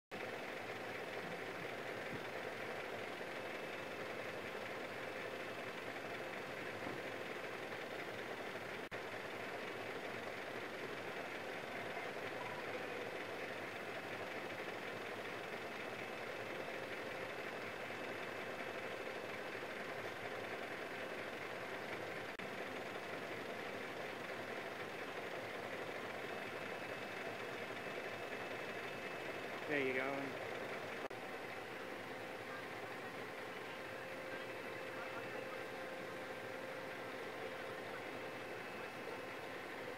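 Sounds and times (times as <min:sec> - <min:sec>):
emergency vehicle engines idling: 0:00.1 - 0:39.9
faint voices: 0:31.8 - 0:39.8.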